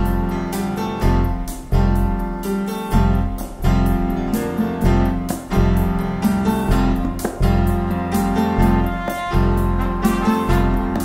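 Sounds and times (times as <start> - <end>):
deep bass line: 0.0 - 11.0
percussion strikes: 0.0 - 11.0
piano chords: 0.0 - 11.0.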